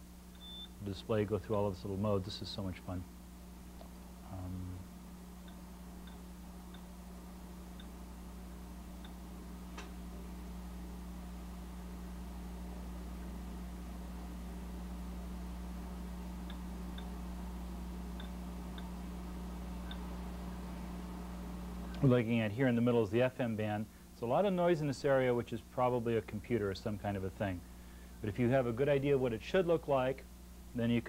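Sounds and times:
electrical mains hum: 0:00.0 - 0:31.0
faint ticks: 0:05.4 - 0:06.9.

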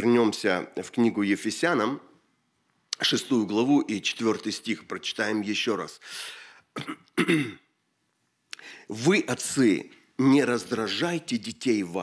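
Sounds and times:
breath in: 0:06.0 - 0:06.7, 0:08.5 - 0:08.9
man clearing throat: 0:06.8 - 0:07.7.

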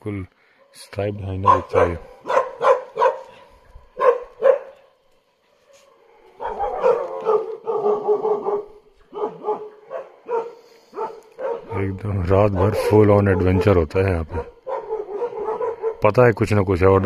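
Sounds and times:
dog barking: 0:00.6 - 0:04.9, 0:05.6 - 0:16.1.

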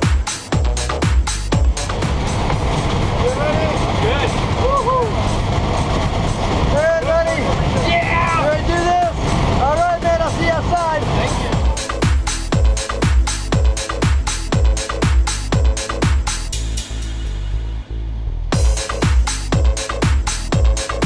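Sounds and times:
dance music with a beat: 0:00.0 - 0:03.2, 0:05.2 - 0:17.2, 0:18.6 - 0:21.0
plane engine and airflow: 0:00.0 - 0:21.0
men calling out and laughing: 0:04.2 - 0:05.2.

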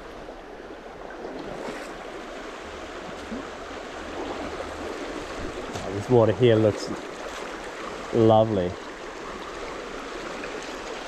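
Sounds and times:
stream rushing over stones: 0:01.0 - 0:11.0.

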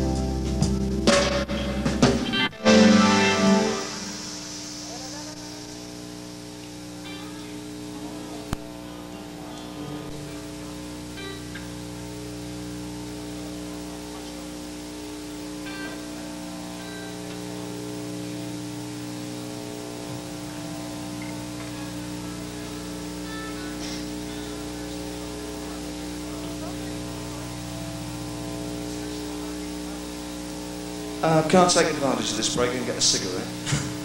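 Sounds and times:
constant hiss: 0:00.0 - 0:34.0
electrical hum: 0:00.0 - 0:34.0.

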